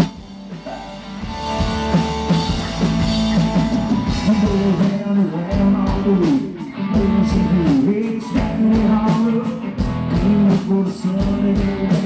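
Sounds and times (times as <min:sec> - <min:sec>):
bass guitar: 0:00.0 - 0:12.0
drums keeping steady beat: 0:00.0 - 0:12.0
electric guitars: 0:00.0 - 0:12.0.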